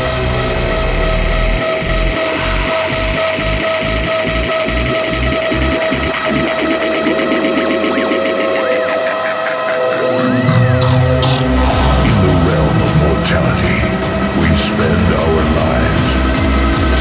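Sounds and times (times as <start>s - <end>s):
hardstyle electronic dance music: 0.0s - 17.0s
rising sweeps: 9.5s - 14.8s.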